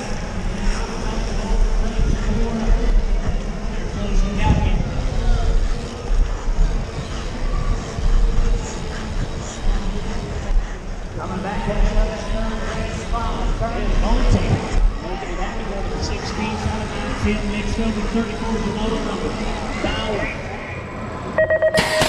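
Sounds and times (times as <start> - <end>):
wind rumbling on microphone: 0.0 - 17.5.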